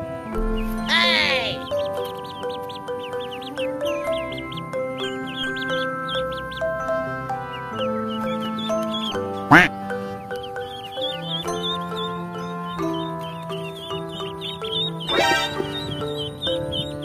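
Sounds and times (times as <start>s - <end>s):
background music: 0.0s - 17.0s
ducklings peeping: 0.0s - 17.0s
loud duckling call: 0.4s - 17.0s.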